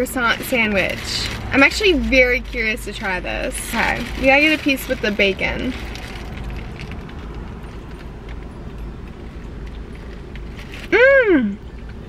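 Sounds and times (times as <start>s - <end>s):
car engine idling: 0.0s - 12.0s
chewing crackles: 0.3s - 11.0s.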